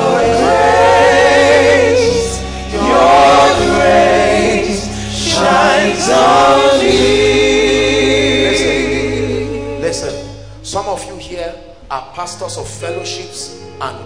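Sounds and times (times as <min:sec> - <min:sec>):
gospel voices singing with vibrato: 0:00.0 - 0:14.0
sustained low accompaniment: 0:00.0 - 0:14.0.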